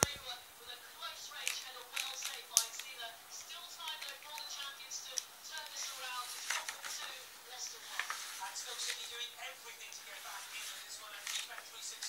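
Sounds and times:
faint television commentary: 0.0 - 12.0
crisp paper clicks: 1.4 - 3.0, 3.8 - 7.1, 11.2 - 11.7
book pages turning: 3.8 - 9.3, 10.0 - 12.0.

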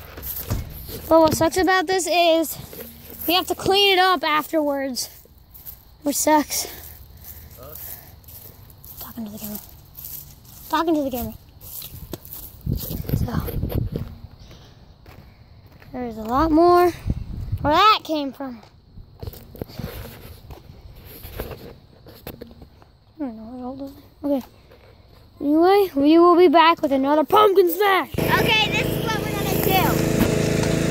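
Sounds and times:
footsteps: 0.0 - 17.0.

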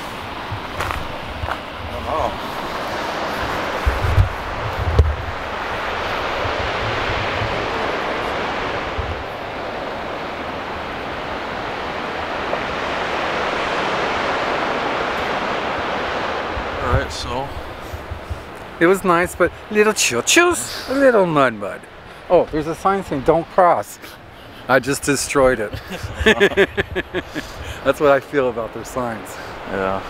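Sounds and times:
ocean surf rushing: 0.0 - 30.0
wind buffeting microphone: 0.0 - 30.0.

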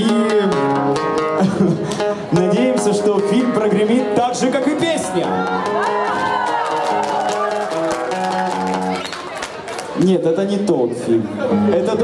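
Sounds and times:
acoustic guitar strumming: 0.0 - 9.0.

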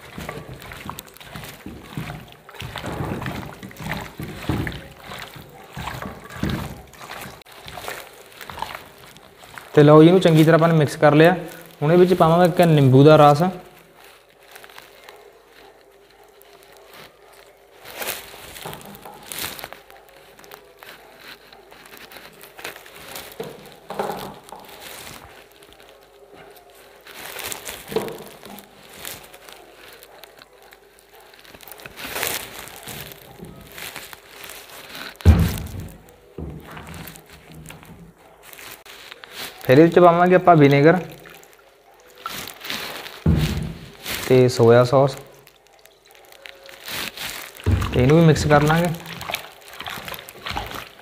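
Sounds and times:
hand squelching meat in marinade: 0.0 - 51.0
thump in metal bowl: 35.3 - 36.6, 43.3 - 43.9.

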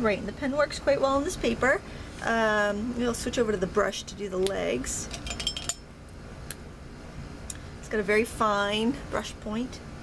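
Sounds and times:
pens and metal tools clinking: 5.0 - 5.8.

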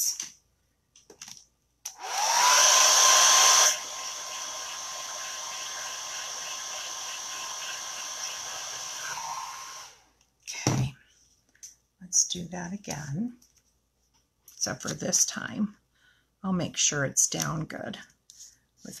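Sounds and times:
hair dryer blowing: 1.9 - 10.0.

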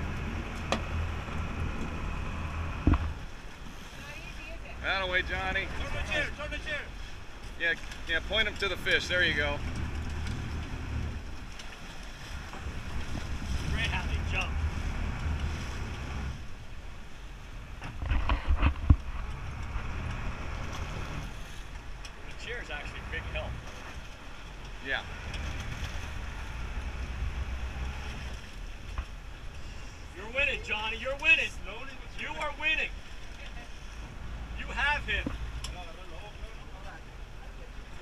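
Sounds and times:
boat engine rumble: 0.0 - 38.0
wind buffeting microphone: 12.3 - 16.6.

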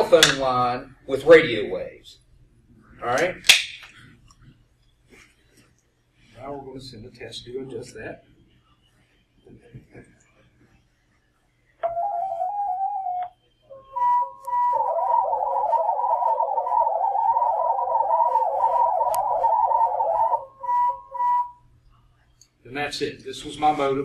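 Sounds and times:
short beeps: 11.8 - 14.8, 19.1 - 21.6
hopping warbling tones: 11.8 - 21.5
stepping tones: 11.8 - 21.5
steady tone: 11.8 - 21.6.

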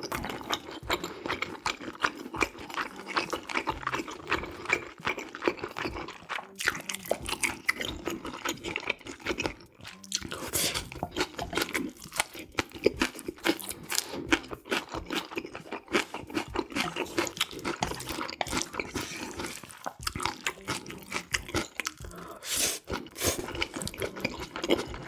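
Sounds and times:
chewing and crunching: 0.0 - 25.0.

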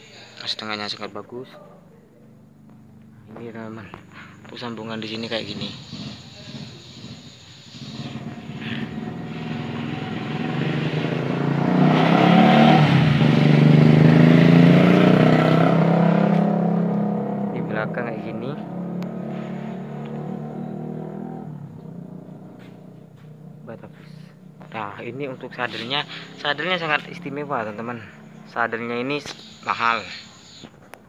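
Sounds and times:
vehicle engine passing by: 2.3 - 30.7.

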